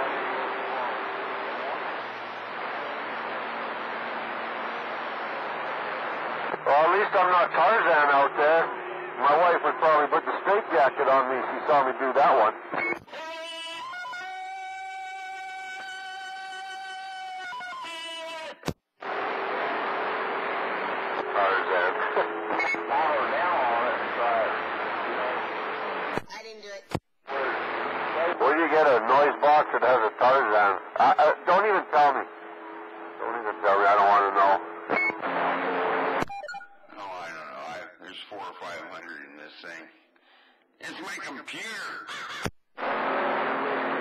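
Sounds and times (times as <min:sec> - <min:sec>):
radio receiver hiss: 0:00.0 - 0:13.1, 0:19.0 - 0:26.3, 0:27.3 - 0:36.3
short radio beep: 0:21.3 - 0:23.0
electronic roger-beep tones: 0:36.3 - 0:37.4.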